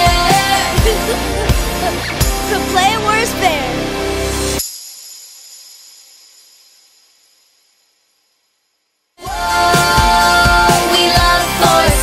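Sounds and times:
pop-rock song ending: 0.0 - 4.6, 9.2 - 12.0.

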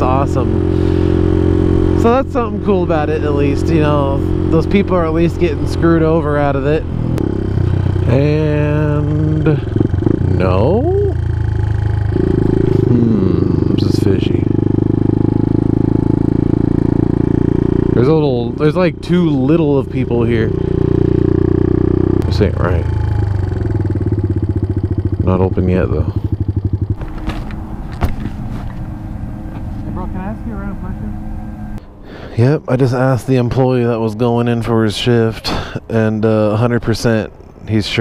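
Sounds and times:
motorcycle engine running: 0.0 - 31.8
faint voice: 12.8 - 13.8.

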